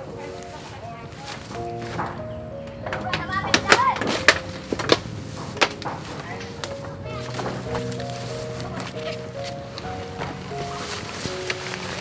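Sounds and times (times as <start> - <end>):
background music: 0.0 - 12.0
leaves tearing and stalks snapping: 3.2 - 12.0.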